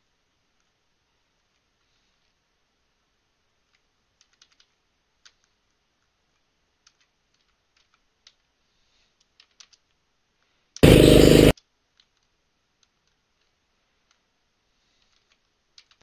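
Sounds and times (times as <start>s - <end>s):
keyboard and mouse clicks: 3.6s - 8.5s, 9.1s - 10.0s, 15.0s - 16.0s
kart engine noise: 10.8s - 11.5s.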